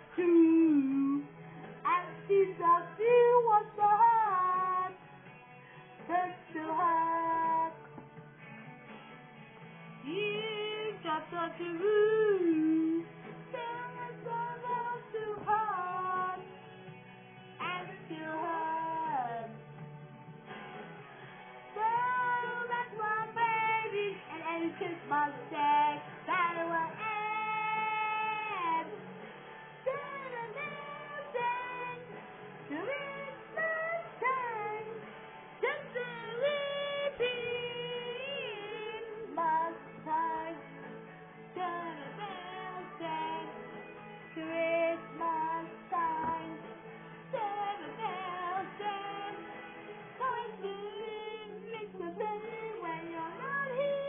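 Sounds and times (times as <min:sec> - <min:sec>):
woman singing with instruments: 0:00.0 - 0:05.1, 0:05.7 - 0:08.0, 0:09.9 - 0:19.8, 0:21.6 - 0:29.1, 0:29.8 - 0:54.0.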